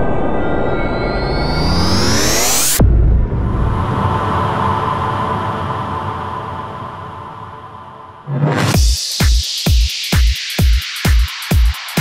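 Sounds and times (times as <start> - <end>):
deep boom: 0.0 - 4.9.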